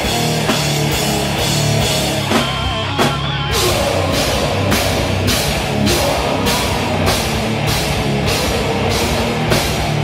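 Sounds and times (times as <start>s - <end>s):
death metal band playing live: 0.0s - 10.0s.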